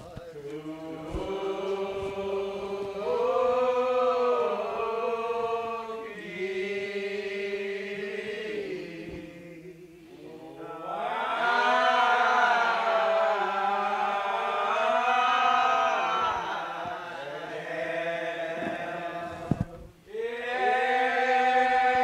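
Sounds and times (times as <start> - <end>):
church choir singing held notes: 0.0 - 22.0.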